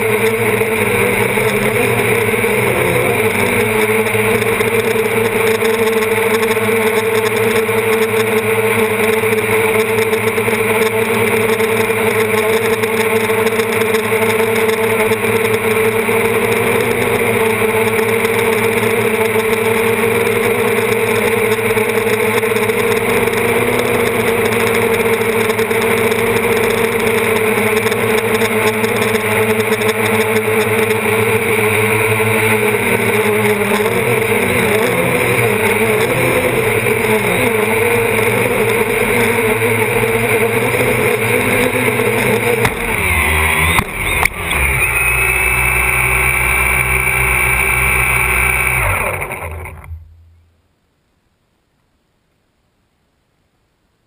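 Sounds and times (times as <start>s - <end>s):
quadcopter motors humming: 0.0s - 50.1s.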